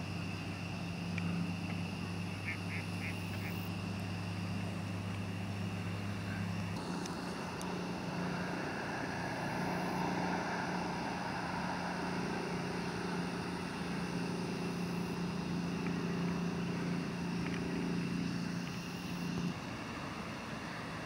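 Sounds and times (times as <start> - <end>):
low engine hum: 0.0 - 21.0.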